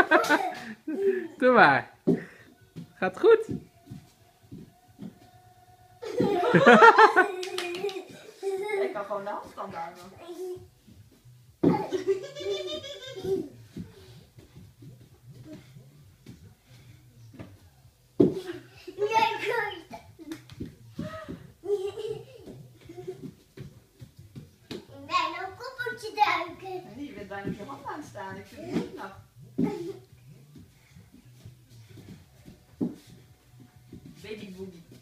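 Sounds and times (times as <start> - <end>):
child speaking: 25.0 - 26.9.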